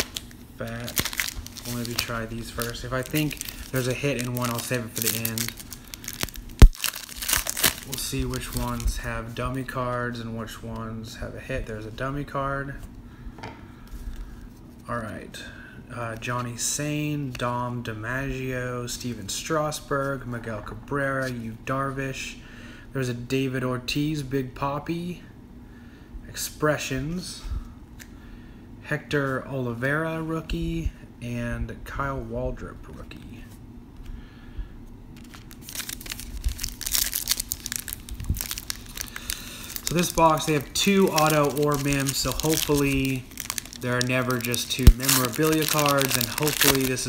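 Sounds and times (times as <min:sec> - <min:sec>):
foil wrapper crinkling and tearing: 0:00.0 - 0:08.9, 0:35.2 - 0:47.0.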